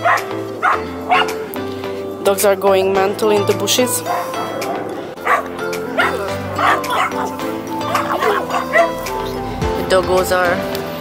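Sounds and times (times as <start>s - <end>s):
dogs barking excitedly: 0.0s - 1.5s, 3.9s - 9.2s
background music: 0.0s - 11.0s.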